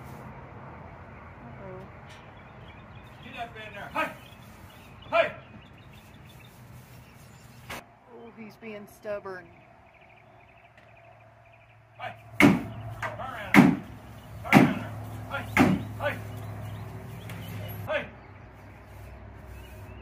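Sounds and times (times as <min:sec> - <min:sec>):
metallic bangs and clanks of gates: 0:12.4 - 0:16.2.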